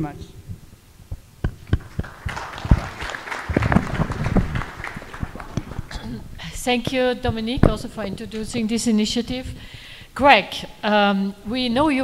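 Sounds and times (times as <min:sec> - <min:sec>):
audience applauding: 0:01.6 - 0:06.2.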